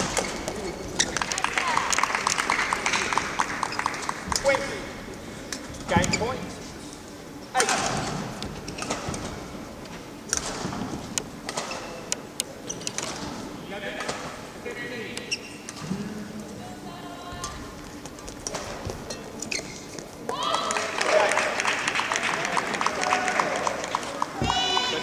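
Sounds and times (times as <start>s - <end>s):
shoes squeaking on court: 0.0s - 1.3s, 12.6s - 13.3s, 15.2s - 15.9s, 17.4s - 20.3s
murmur of voices: 0.0s - 25.0s.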